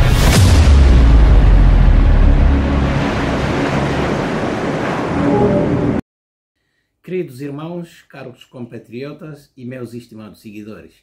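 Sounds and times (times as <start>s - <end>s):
intro ident music: 0.0s - 4.4s
dense rushing sweep: 0.0s - 6.0s.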